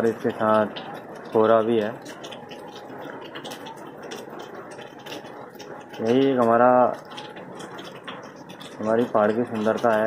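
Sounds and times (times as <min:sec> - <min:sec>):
raindrop ticks: 0:00.0 - 0:10.0.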